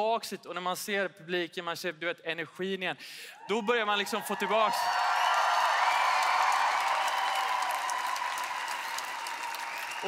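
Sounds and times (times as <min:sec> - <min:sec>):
audience applauding: 0:04.5 - 0:10.0.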